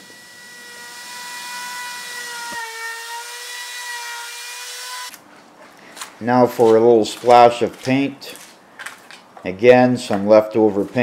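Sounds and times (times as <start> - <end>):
wood router whining: 0.0 - 5.2.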